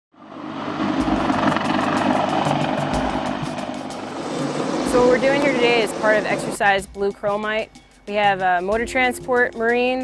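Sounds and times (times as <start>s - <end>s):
helicopter rotor and turbines: 0.1s - 7.5s
rotor blades chopping: 0.3s - 6.6s.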